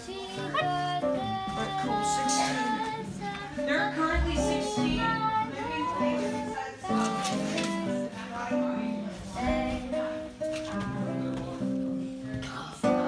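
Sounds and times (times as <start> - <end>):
acoustic guitar: 0.0 - 13.0
girl singing: 0.0 - 13.0.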